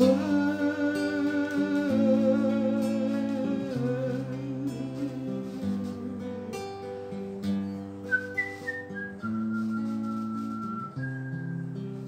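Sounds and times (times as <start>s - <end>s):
acoustic guitar chords: 0.0s - 12.0s
person whistling a melody: 7.4s - 12.0s.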